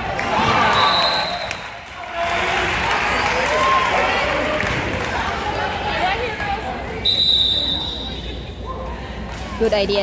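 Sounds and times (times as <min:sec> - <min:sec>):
spectators chatting: 0:00.0 - 0:10.0
referee's whistle blast: 0:00.6 - 0:01.6.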